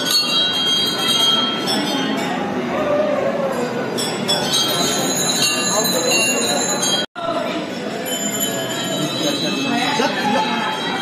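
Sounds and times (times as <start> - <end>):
temple bells ringing: 0.0 - 2.6, 3.9 - 11.0
crowd chatter: 0.0 - 11.0.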